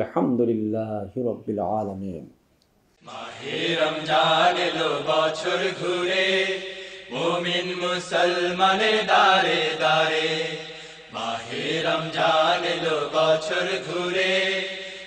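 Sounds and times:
person singing slow chanted song: 3.0s - 15.0s.

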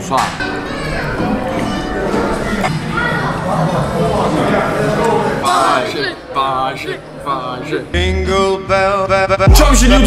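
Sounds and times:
indistinct talking voices: 0.0s - 10.0s
child's voice: 0.4s - 3.4s.

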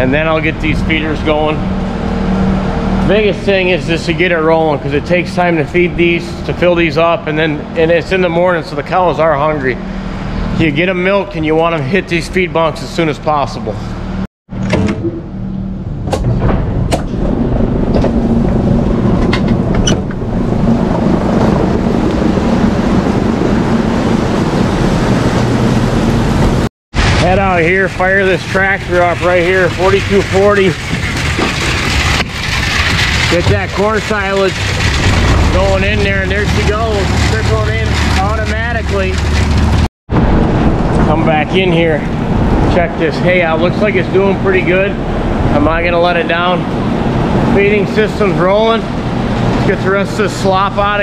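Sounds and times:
machinery humming: 0.0s - 51.0s
rough noisy background: 0.0s - 51.0s
machinery clanks: 27.0s - 39.9s
tractor diesel engine droning: 27.3s - 39.8s.

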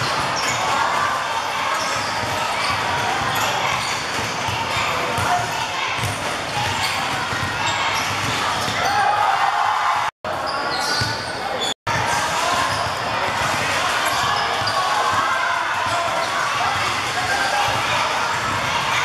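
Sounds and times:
spectators shouting and chattering: 0.0s - 19.0s
basketball bouncing on court floor: 1.8s - 8.9s, 12.5s - 15.2s.

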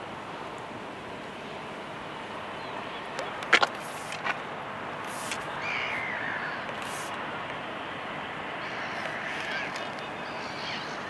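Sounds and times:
outdoor background noise: 0.0s - 11.0s
bird calling: 5.0s - 7.2s, 8.6s - 11.0s.

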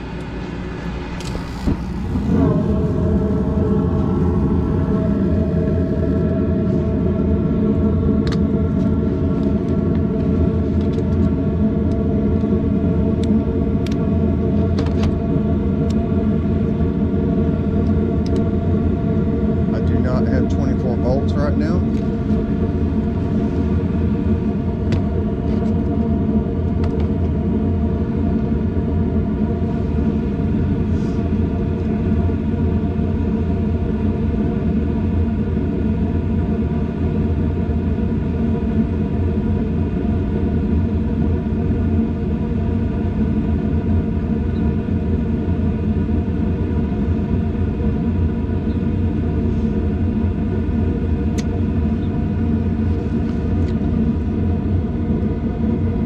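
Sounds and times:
motor hum: 0.0s - 28.0s.

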